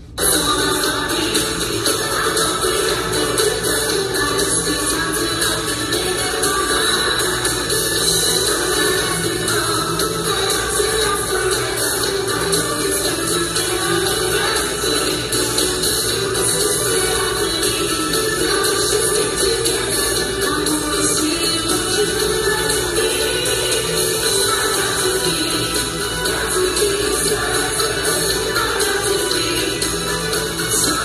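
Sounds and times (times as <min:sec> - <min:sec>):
band playing pop music: 0:00.0 - 0:31.0
female singer: 0:00.2 - 0:31.0.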